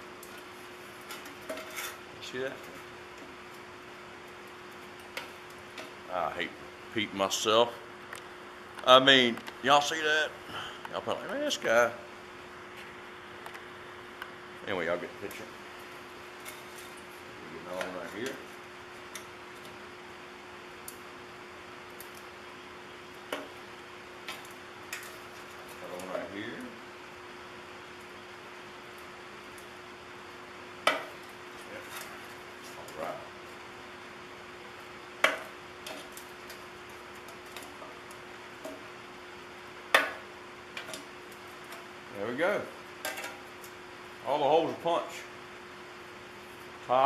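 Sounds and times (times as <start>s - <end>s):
faint steady hum: 0.0s - 47.0s.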